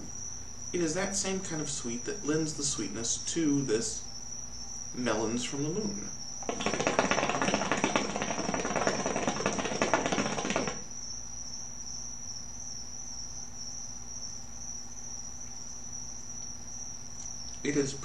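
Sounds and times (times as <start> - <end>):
high-pitched insect trill: 0.0 - 18.0
hookah water bubbling: 6.4 - 10.9.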